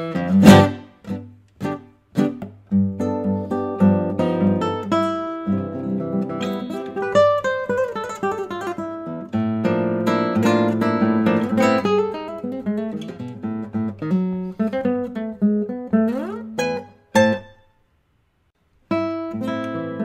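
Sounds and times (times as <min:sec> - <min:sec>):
fingerpicked classical guitar: 0:00.0 - 0:17.8, 0:18.7 - 0:20.0.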